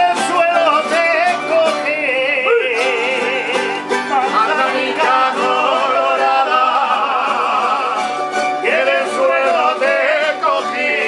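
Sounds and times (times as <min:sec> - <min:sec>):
man singing with vibrato: 0:00.0 - 0:11.0
plucked string chords: 0:00.0 - 0:11.0.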